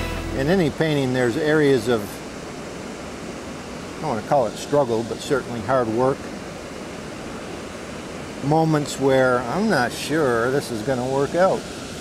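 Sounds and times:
steady rushing background noise: 0.0 - 12.0.

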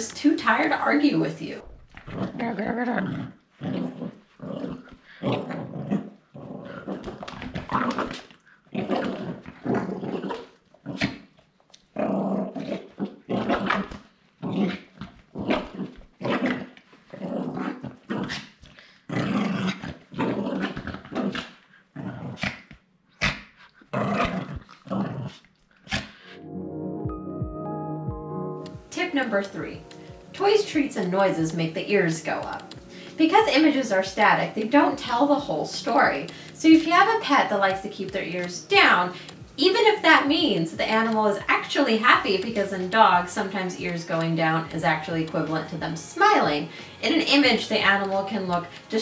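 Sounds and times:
small dog play-growling: 1.9 - 11.2, 11.9 - 26.3.

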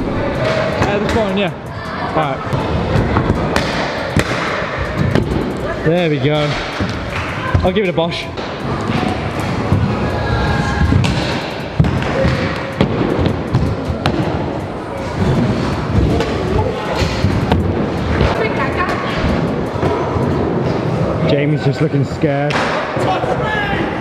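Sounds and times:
voices: 0.0 - 24.0.

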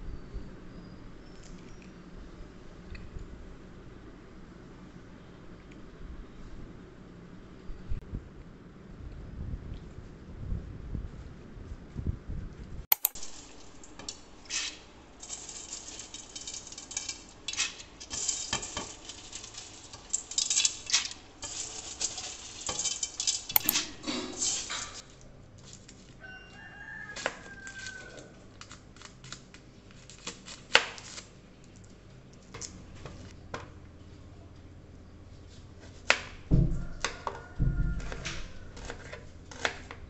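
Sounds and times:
sharp click: 12.9 - 13.2, 23.5 - 23.9
dry noodles rustling in colander: 13.2 - 31.3.

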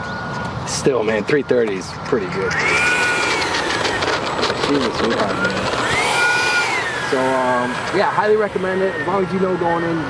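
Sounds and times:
electric ducted fan whining: 0.0 - 10.0.

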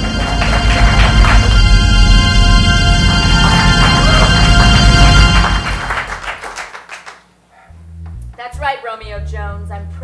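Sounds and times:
low bass tone: 0.0 - 6.2, 7.6 - 10.0
dramatic music: 0.0 - 6.6
audience clapping: 0.0 - 7.4.

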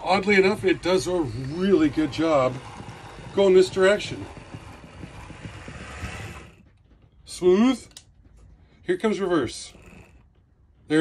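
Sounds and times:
model train motor whirring: 0.0 - 6.7, 9.2 - 10.3
wheels on rails: 0.0 - 8.4, 9.0 - 11.0.

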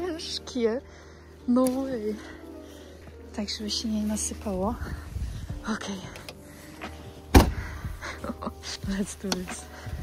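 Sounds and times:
car boot lid slamming: 7.3 - 7.6.

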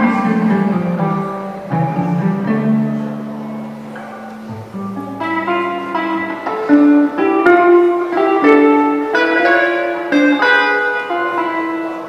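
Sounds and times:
electric guitar notes: 0.0 - 12.0.

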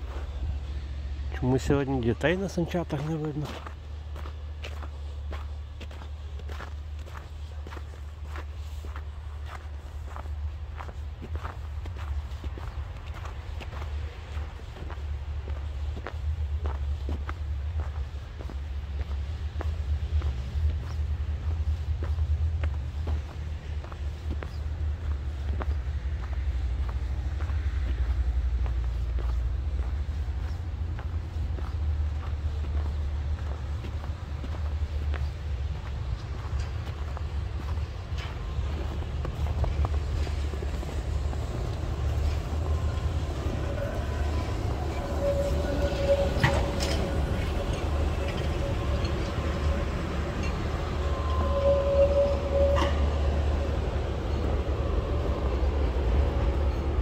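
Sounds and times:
footsteps in snow: 0.0 - 51.6
low rumble: 9.8 - 57.0.

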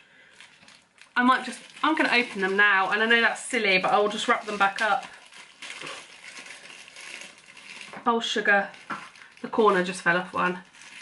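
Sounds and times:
foil wrapper crinkling and tearing: 0.1 - 11.0.

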